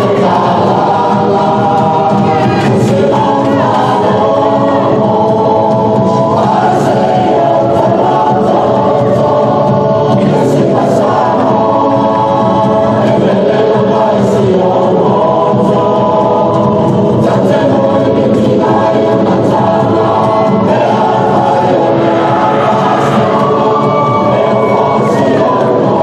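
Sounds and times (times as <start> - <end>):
group singing in harmony: 0.0 - 26.0.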